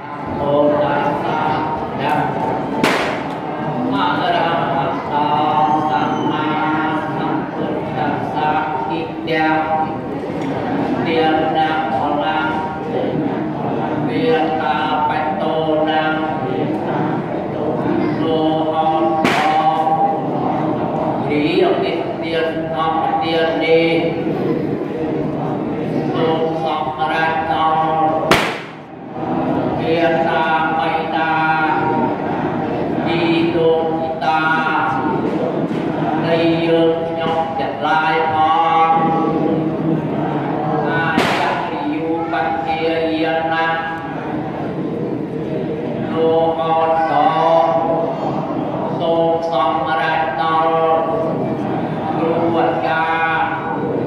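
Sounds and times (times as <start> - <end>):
sharp knock: 2.8 - 3.4, 19.2 - 19.7, 28.3 - 28.9, 41.2 - 41.7
sharp crack: 2.8 - 3.5, 19.2 - 19.8, 28.3 - 28.9, 41.2 - 41.8.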